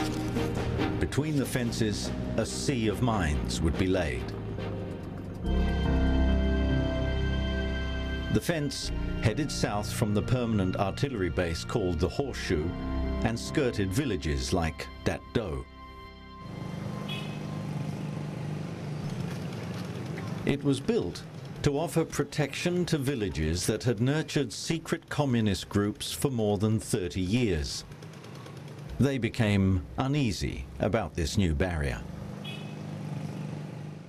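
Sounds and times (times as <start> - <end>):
background music: 0.0 - 18.6
vehicle engine running: 16.4 - 22.8, 26.8 - 30.0
motorbikes passing: 16.4 - 23.2, 27.2 - 29.2, 32.0 - 34.0.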